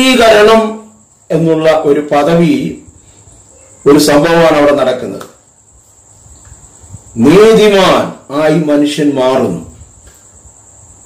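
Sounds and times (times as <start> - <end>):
man speaking: 0.0 - 2.9, 3.8 - 5.4, 7.2 - 9.8
crickets chirring: 0.0 - 11.0.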